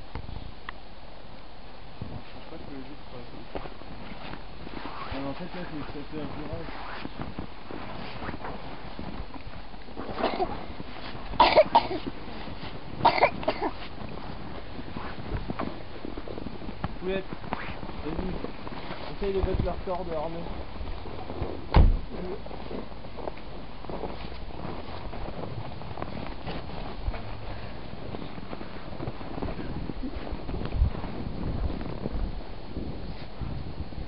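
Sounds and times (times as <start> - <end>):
low steady rumble: 0.0 - 34.0
footsteps in snow: 2.0 - 33.6
loud thump: 21.7 - 22.1.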